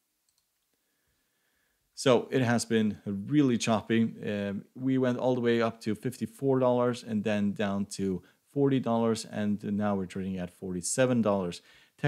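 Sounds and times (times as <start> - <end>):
computer mouse clicks: 0.2 - 0.8.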